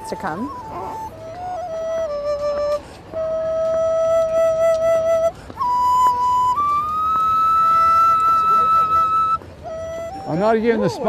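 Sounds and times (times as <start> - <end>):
solo flute melody: 0.0 - 11.0.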